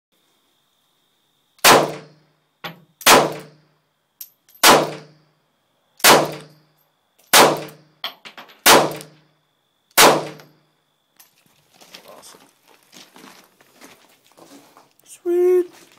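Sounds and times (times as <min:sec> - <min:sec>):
pistol shots: 0:01.6 - 0:02.1, 0:03.0 - 0:03.6, 0:04.6 - 0:05.1, 0:06.0 - 0:06.6, 0:07.3 - 0:07.8, 0:08.6 - 0:09.2, 0:10.0 - 0:10.5.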